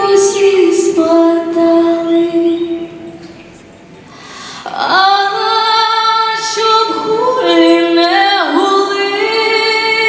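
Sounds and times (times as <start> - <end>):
woman singing into a microphone: 0.0 - 3.1, 4.4 - 10.0.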